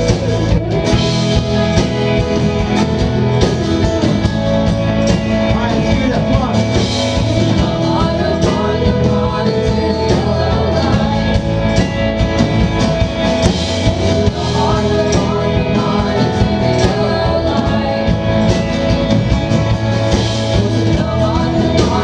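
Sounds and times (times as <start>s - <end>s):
indie rock band playing: 0.0s - 22.0s.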